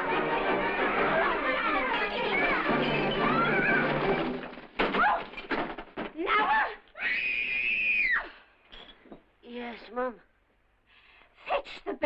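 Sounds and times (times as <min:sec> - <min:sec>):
long high-pitched scream: 0:07.0 - 0:08.4.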